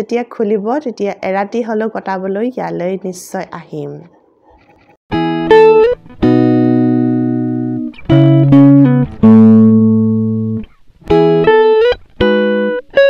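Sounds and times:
guitar chords: 5.1 - 13.0.

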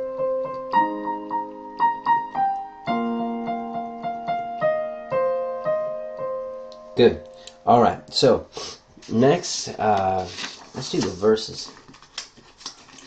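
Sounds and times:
electronic keyboard piano riff: 0.0 - 8.3.

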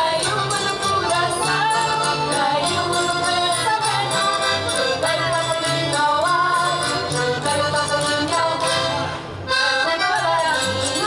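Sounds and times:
accordion: 0.0 - 11.0
guitar: 0.0 - 11.0
voices singing: 0.0 - 11.0.

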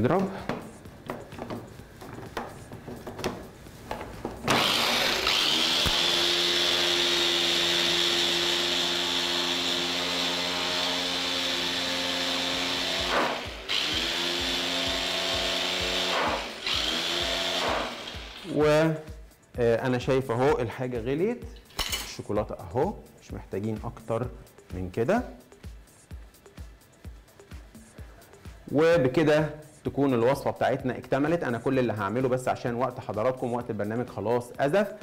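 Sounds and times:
electric chopper motor whine: 4.5 - 18.5.

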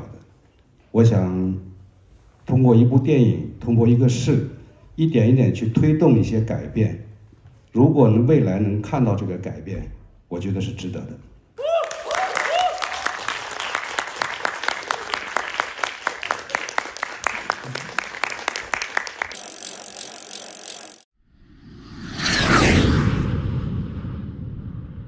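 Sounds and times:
audience applauding: 11.8 - 19.7
whoosh with falling tones: 19.7 - 25.0.

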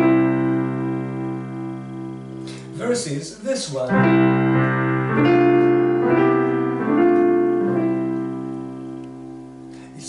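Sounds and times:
piano block chords: 0.0 - 10.0.

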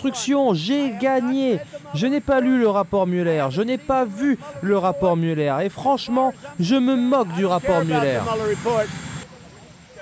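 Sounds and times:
man talking: 0.0 - 10.0
steady rushing noise: 0.5 - 10.0.

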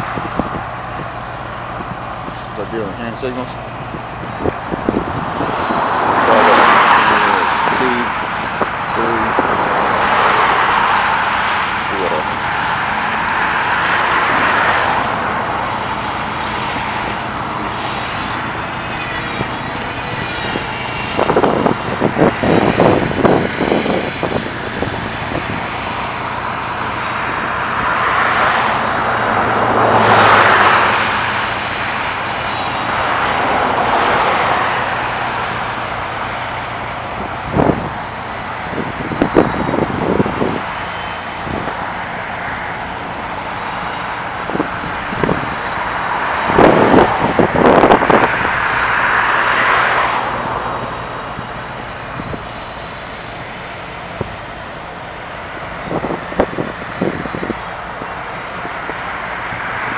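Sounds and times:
vehicles passing: 0.0 - 59.9.

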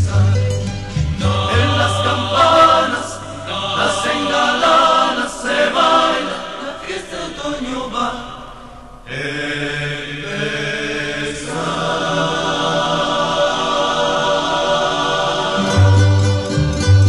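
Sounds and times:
choir holding chord: 0.9 - 16.9
plucked guitar notes: 15.6 - 17.0.

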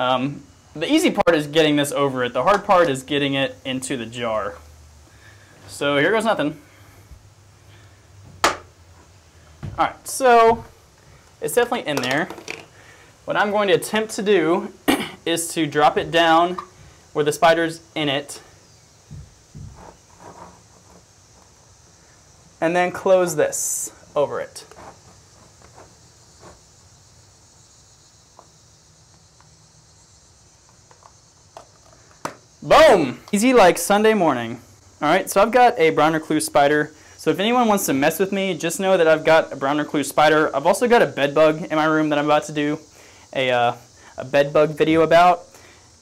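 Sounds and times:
faint high hiss: 0.0 - 46.0.

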